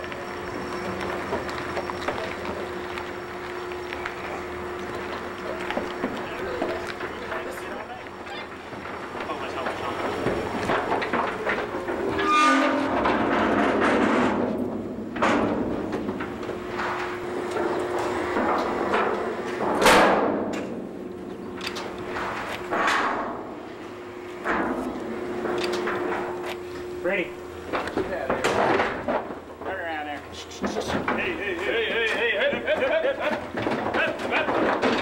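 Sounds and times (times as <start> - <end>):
steel gates clanging and rattling: 0.0 - 23.7, 24.4 - 35.0
steady hum: 0.0 - 35.0.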